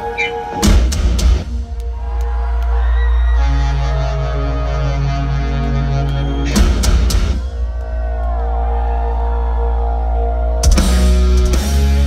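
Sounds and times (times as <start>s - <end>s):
deep bass drone: 0.7s - 12.0s.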